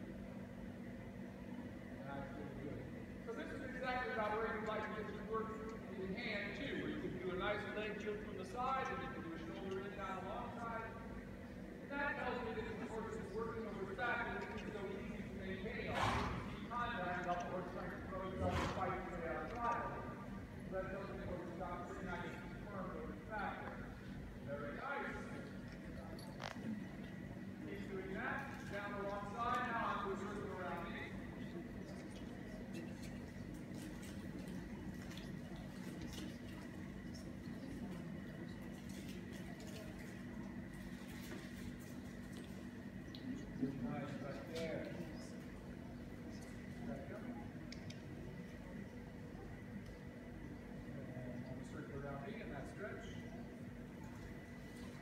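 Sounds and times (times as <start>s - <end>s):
low hum of indoor space: 0.0s - 55.0s.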